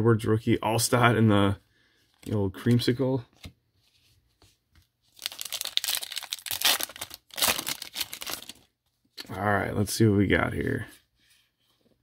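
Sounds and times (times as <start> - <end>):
foil wrapper tearing and crinkling: 5.2 - 8.7.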